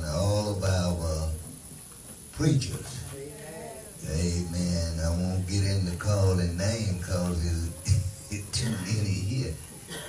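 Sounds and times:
man chanting in deep voice: 0:04.0 - 0:09.6.

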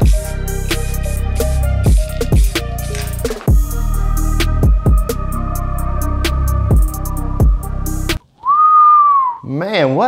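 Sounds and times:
beat-driven music with bass drops: 0:00.0 - 0:08.2
person whistling: 0:08.4 - 0:09.4.

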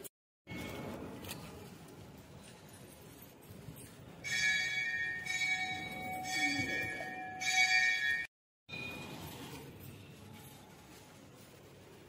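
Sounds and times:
temple bell ringing: 0:04.2 - 0:09.3.

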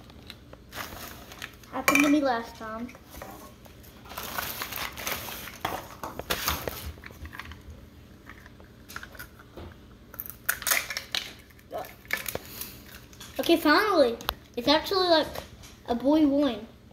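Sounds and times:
plastic wrapping crinkling: 0:00.0 - 0:01.8, 0:03.8 - 0:07.6.

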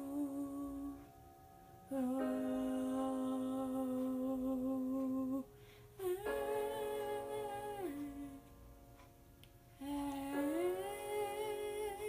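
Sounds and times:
woman humming held notes: 0:00.0 - 0:01.1, 0:01.9 - 0:08.6.

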